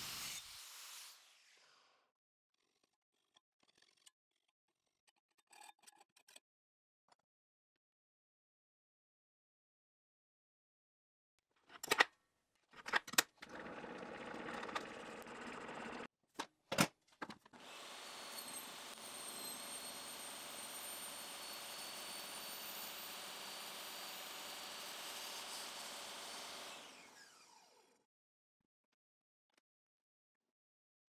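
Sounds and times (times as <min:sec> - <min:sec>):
table saw motor and blade whine: 0:00.0 - 0:01.8, 0:13.5 - 0:16.1, 0:17.6 - 0:28.0.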